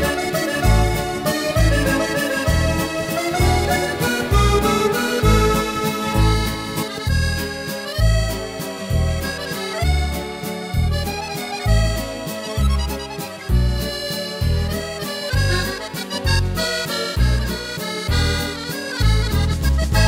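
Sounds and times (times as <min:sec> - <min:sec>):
accordion waltz on keyboard: 0:00.0 - 0:20.0
low bass notes: 0:00.0 - 0:20.0.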